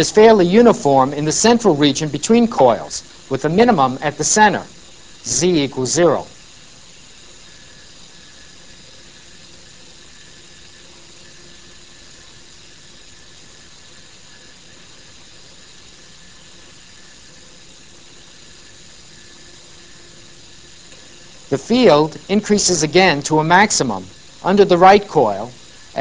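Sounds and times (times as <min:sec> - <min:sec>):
motorised carriage hiss and hum: 0:00.0 - 0:26.0.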